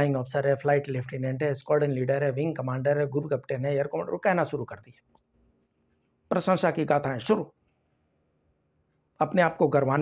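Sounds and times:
man speaking: 0.0s - 5.2s, 6.2s - 7.6s, 9.1s - 10.0s
faint steady hum: 0.0s - 10.0s.

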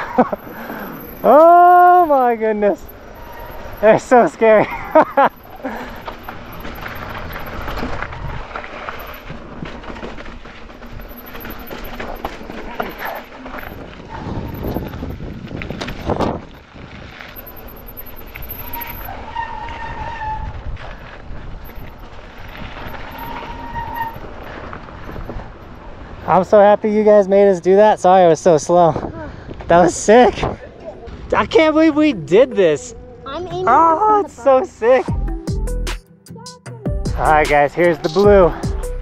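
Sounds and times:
bike tyres rumbling over rocky ground: 0.0s - 27.5s
brief high squeals: 18.6s - 20.5s, 23.1s - 24.2s.

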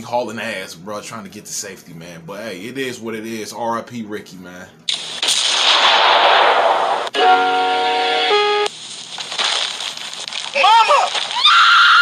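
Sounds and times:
gunfire blast with roar: 5.2s - 7.2s.

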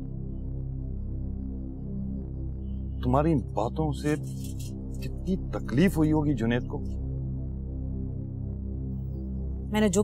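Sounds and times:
low droning background music: 0.0s - 10.0s.

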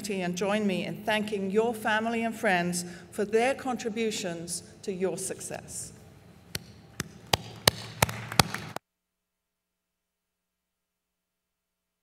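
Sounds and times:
hand clapping: 6.5s - 8.8s.

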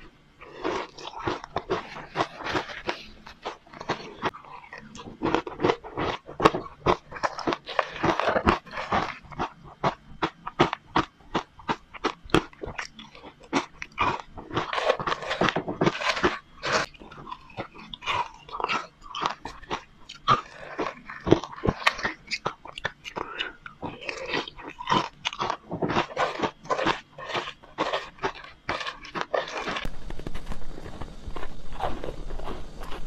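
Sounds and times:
crunching ice being chewed: 0.0s - 33.0s.

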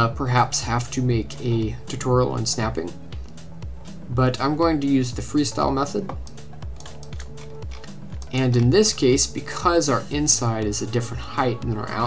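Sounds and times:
soft background music: 0.0s - 12.0s
keyboard and mouse clicking: 6.0s - 8.4s.

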